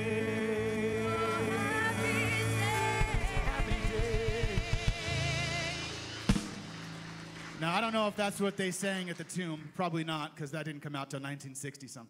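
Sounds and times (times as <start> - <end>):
band playing loud final hit: 1.4 - 8.2
man speaking: 7.6 - 12.0.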